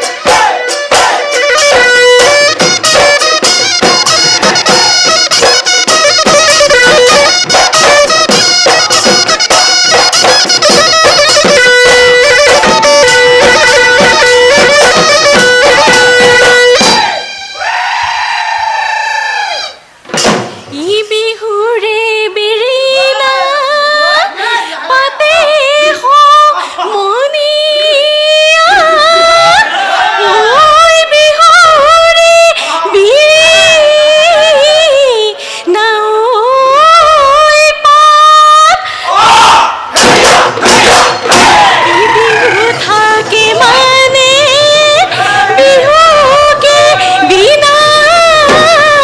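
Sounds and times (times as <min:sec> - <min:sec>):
drum beats: 0:00.0 - 0:17.7, 0:20.0 - 0:20.8, 0:39.1 - 0:49.0
shrill reedy pipe melody: 0:00.0 - 0:18.0
men shouting cries: 0:12.3 - 0:13.5, 0:15.2 - 0:19.9, 0:28.8 - 0:30.6, 0:39.0 - 0:48.4.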